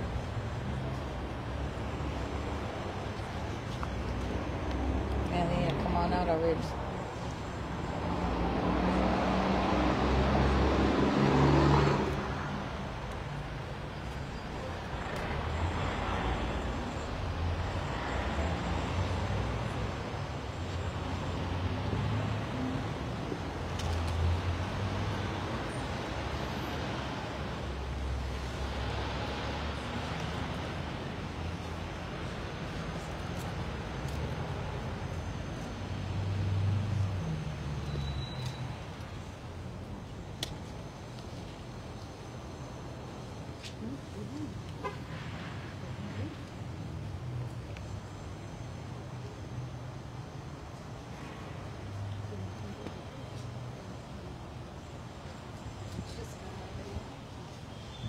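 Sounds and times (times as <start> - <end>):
passing traffic: 0.0 - 58.0
steady outdoor hiss: 0.0 - 58.0
vehicle driving past: 8.1 - 12.6.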